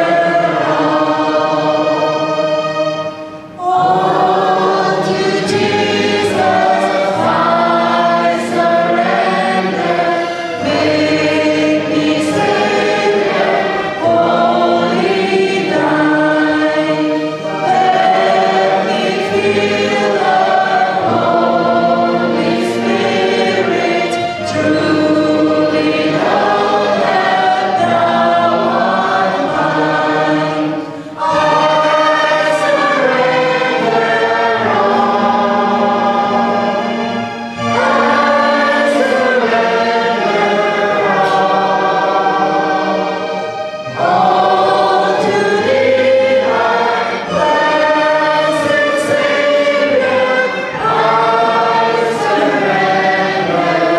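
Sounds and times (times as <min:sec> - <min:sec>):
electric keyboard: 0:00.0 - 0:53.9
group singing worship song: 0:00.0 - 0:53.9.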